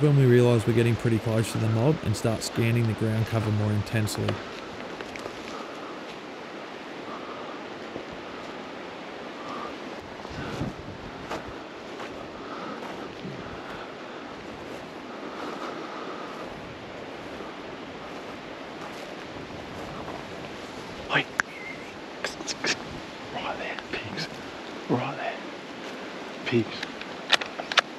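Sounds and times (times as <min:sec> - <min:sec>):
rushing outdoor background noise: 0:00.0 - 0:27.9
footsteps through dry grass: 0:04.4 - 0:06.7, 0:09.8 - 0:21.1.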